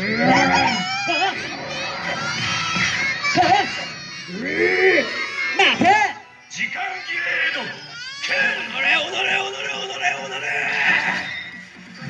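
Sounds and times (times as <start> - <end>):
young children shouting: 0.0 - 6.2.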